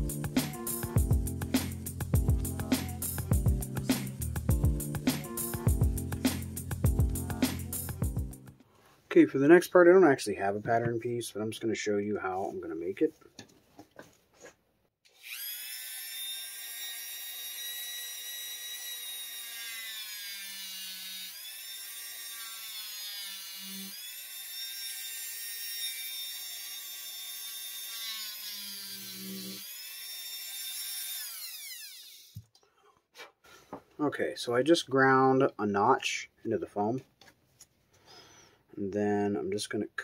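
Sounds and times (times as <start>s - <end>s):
rotary tool whining while grinding foam: 15.1s - 32.5s.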